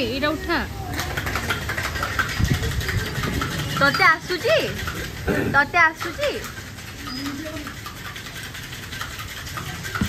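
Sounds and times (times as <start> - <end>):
cocktail shaker rattling: 0.9 - 10.0.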